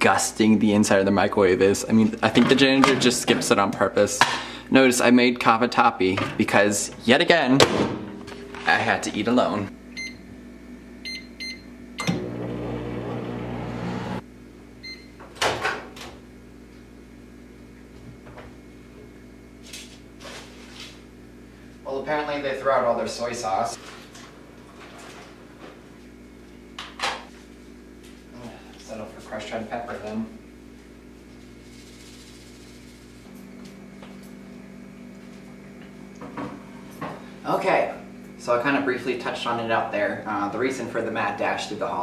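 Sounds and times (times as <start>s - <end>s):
microwave humming: 0.0s - 42.0s
microwave keypad beeping: 10.0s - 10.2s, 11.0s - 12.3s
microwave start click: 12.0s - 14.2s.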